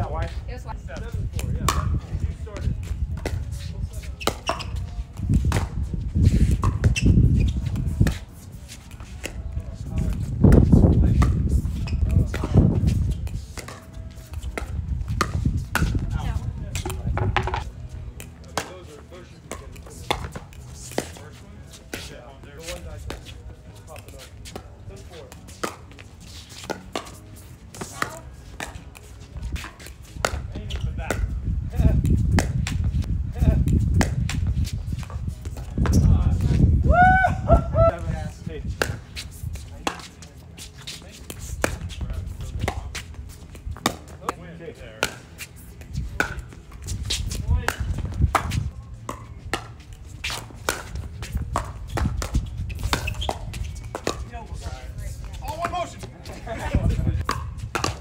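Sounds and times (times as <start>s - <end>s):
paddle hitting plastic ball: 16.8s - 17.7s.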